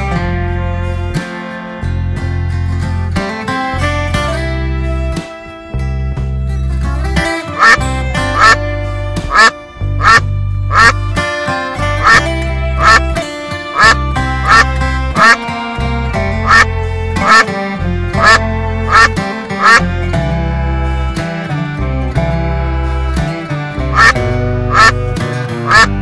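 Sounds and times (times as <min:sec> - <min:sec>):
country guitar backing music: 0:00.0 - 0:26.0
duck quacks: 0:07.6 - 0:08.6, 0:09.3 - 0:11.0, 0:12.0 - 0:12.2, 0:12.8 - 0:13.0, 0:13.8 - 0:15.4, 0:16.4 - 0:17.5, 0:18.2 - 0:19.8, 0:23.9 - 0:25.0, 0:25.6 - 0:26.0.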